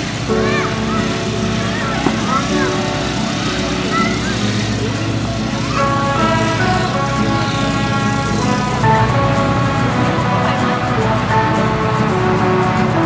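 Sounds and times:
steady motor hum: 0.0 - 12.2
fairground music: 0.0 - 13.0
high-pitched voices calling out: 0.2 - 8.6.

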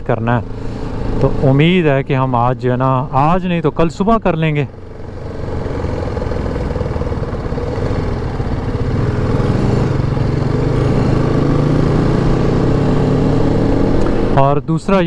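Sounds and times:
wind and road noise: 0.0 - 15.0
motorcycle engine running: 0.1 - 15.0.

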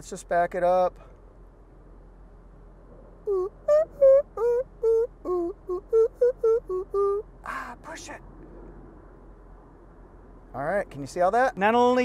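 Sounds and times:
man singing wordless tune: 3.3 - 7.3.

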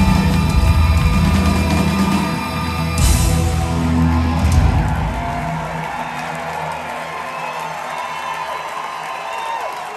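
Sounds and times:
rock band final chord: 0.0 - 5.8
audience cheering and applauding: 0.0 - 9.9.

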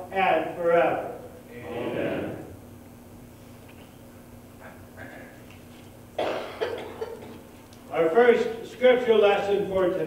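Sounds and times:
man clearing throat: 6.2 - 7.4
man coughing: 6.2 - 7.4.

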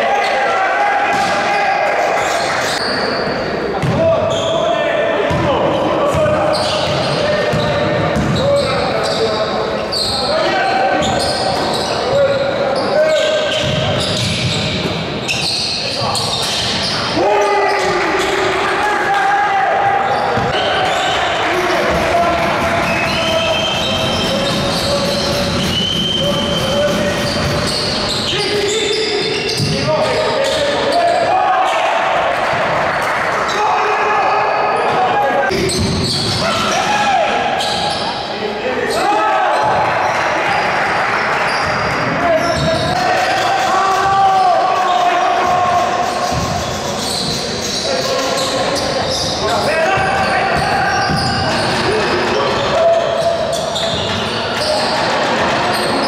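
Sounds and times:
sneakers squeaking: 2.2 - 18.6, 19.9 - 56.0
people shouting: 42.2 - 46.5.

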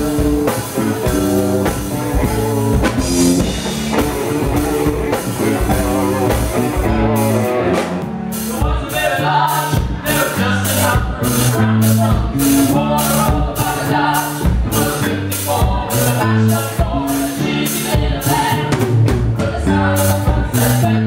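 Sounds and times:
drum kit: 0.0 - 21.0
electric guitar: 0.0 - 21.0
person singing: 8.3 - 18.8, 19.4 - 21.0.

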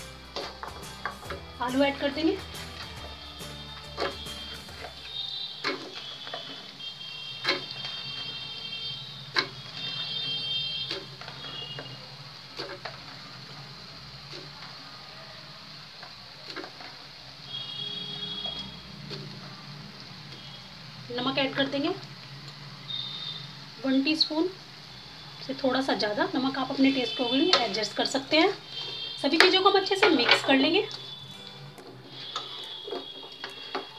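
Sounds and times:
soft background music: 0.0 - 6.1, 30.5 - 33.9.

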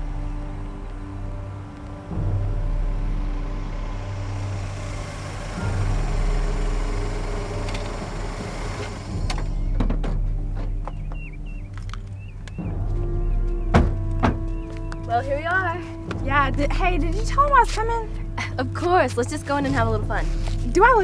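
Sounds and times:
background music: 0.0 - 21.0
car engine and tyres: 0.0 - 21.0.

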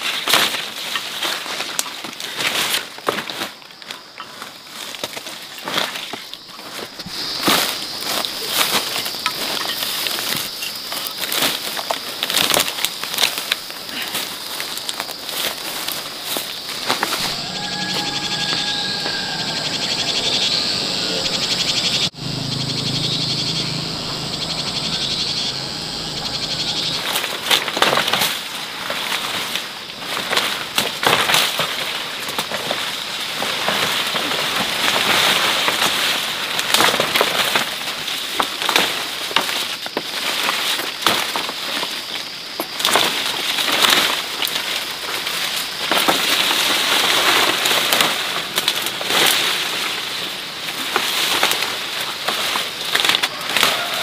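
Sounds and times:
high insect drone: 0.0 - 54.0
rustling of dry grass and foliage: 0.0 - 54.0
faint high chirping: 17.2 - 27.1.

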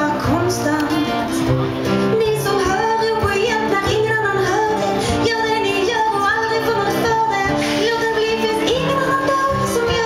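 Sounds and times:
acoustic guitar: 0.0 - 10.0
woman singing: 0.0 - 10.0.

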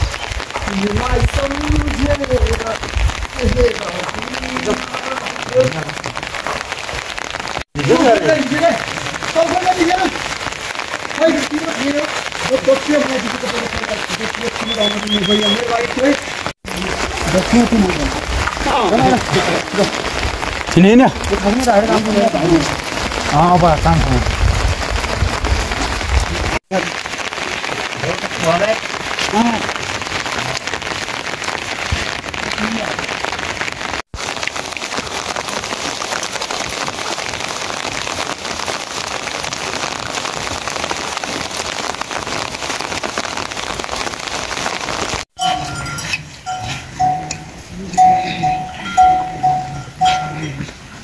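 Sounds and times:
steady rain falling: 0.0 - 51.0
cattle bell ringing: 45.4 - 50.6.

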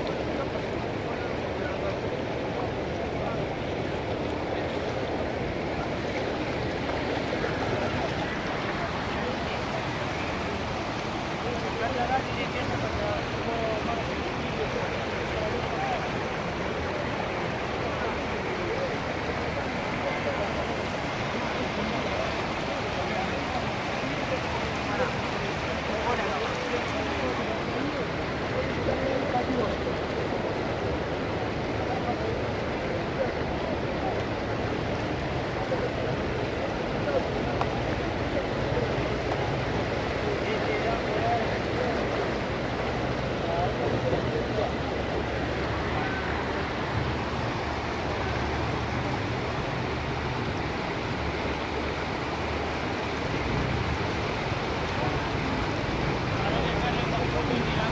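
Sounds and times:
people talking indistinctly: 0.0 - 49.7, 52.8 - 57.9
floodwater rushing: 0.0 - 57.9.

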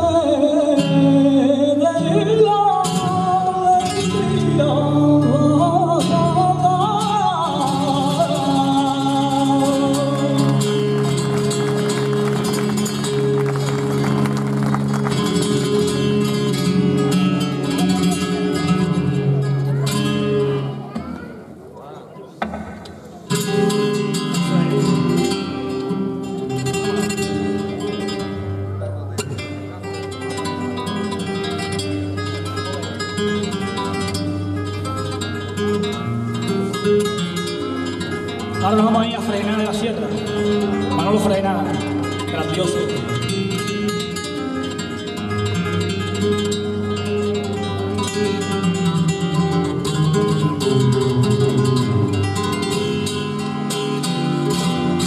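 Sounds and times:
flamenco guitar: 0.0 - 55.0
flamenco singer: 0.0 - 55.0.

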